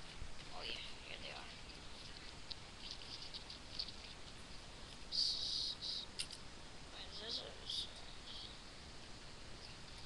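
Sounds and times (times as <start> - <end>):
handling clicks and rustles: 1.4 - 5.1.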